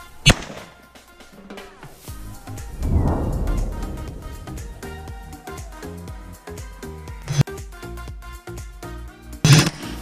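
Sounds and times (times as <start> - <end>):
background music: 0.0 - 10.0
shotgun shot: 9.5 - 10.0.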